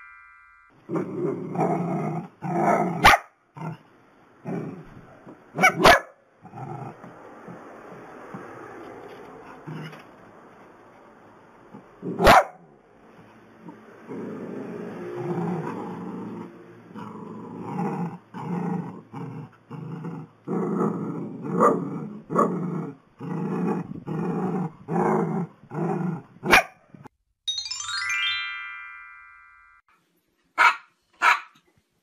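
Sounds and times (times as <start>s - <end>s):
small dog growling and barking: 0.9s - 7.6s, 9.4s - 10.0s, 11.7s - 12.5s, 13.6s - 26.7s.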